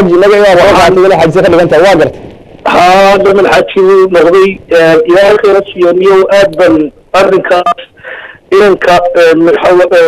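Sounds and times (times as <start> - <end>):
man talking: 0.0 - 2.1, 2.7 - 10.0.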